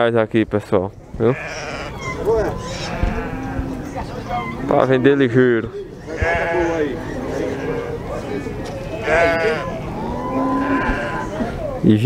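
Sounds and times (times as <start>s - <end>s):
sheep bleating: 1.2s - 4.0s, 6.0s - 11.5s.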